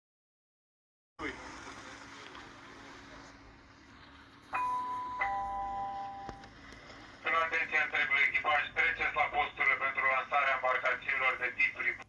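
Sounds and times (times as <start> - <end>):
two-note ding-dong chime: 4.5 - 6.4.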